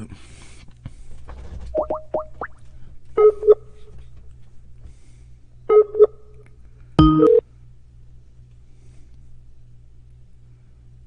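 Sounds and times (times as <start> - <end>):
two-note ring tone: 7.0 - 7.4.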